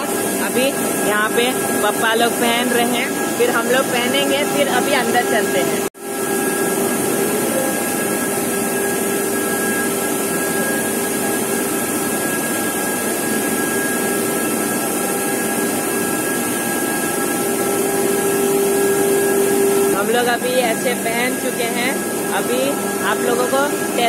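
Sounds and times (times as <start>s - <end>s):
factory machinery drone: 0.0s - 24.0s.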